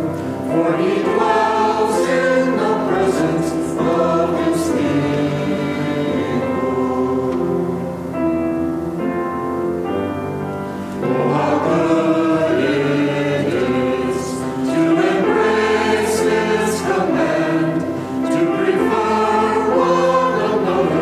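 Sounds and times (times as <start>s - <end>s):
choir singing a hymn: 0.0s - 8.8s, 10.6s - 21.0s.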